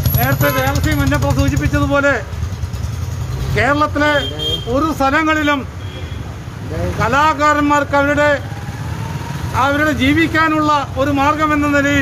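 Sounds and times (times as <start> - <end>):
vehicle engine rumble: 0.0 - 4.2
man speaking: 9.6 - 12.0.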